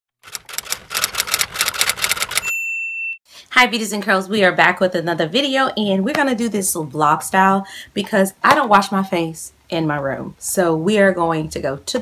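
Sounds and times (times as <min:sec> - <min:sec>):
typewriter keystroke clicks: 0:00.2 - 0:02.5.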